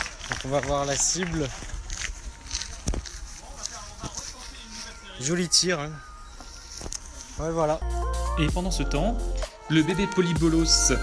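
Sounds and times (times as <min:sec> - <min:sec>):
footsteps on grass: 0:00.0 - 0:07.8.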